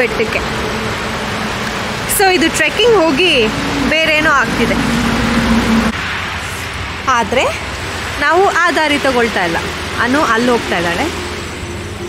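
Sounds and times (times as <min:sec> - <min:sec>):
steady low hum: 0:00.0 - 0:06.0
water rushing over ledge: 0:00.0 - 0:11.8
person speaking: 0:02.1 - 0:05.0.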